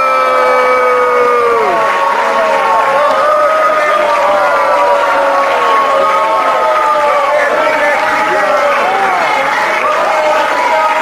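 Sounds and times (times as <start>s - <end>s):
audience clapping: 0.0s - 11.0s
people shouting: 0.0s - 11.0s.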